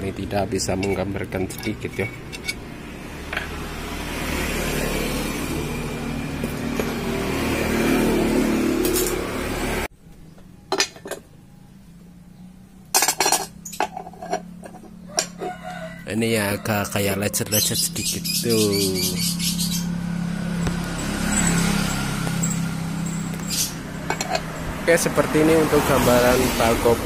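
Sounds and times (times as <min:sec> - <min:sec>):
metal parts clinking: 0:00.6 - 0:02.6, 0:10.7 - 0:11.3, 0:12.9 - 0:15.5, 0:22.4 - 0:24.5
rustling and scraping on a workbench: 0:13.2 - 0:15.6.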